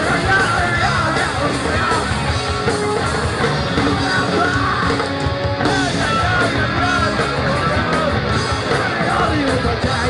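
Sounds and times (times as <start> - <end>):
punk band playing: 0.0 - 10.0
singer yelling: 3.6 - 10.0.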